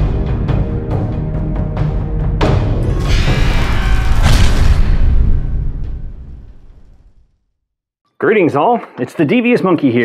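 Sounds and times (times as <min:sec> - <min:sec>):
deep boom rumble: 0:03.1 - 0:07.3.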